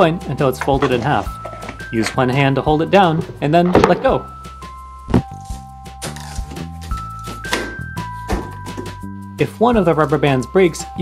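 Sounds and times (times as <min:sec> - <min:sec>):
background music with light beat: 0:00.0 - 0:11.0.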